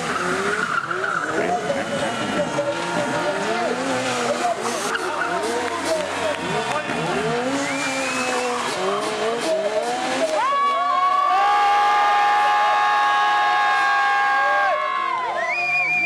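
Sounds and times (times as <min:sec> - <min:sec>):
motorcycle engines revving: 0:00.0 - 0:14.7.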